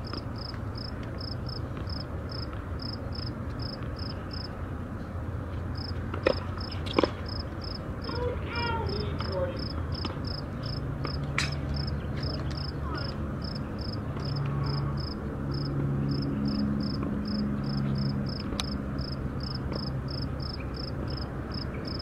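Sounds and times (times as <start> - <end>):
insect chirping: 0.4 - 4.5, 7.3 - 7.8, 9.6 - 11.2, 13.4 - 14.4, 15.0 - 22.0.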